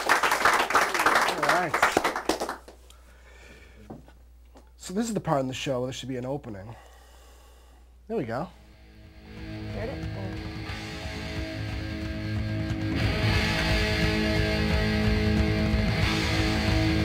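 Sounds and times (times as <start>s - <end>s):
rock music with guitar: 8.7s - 17.0s.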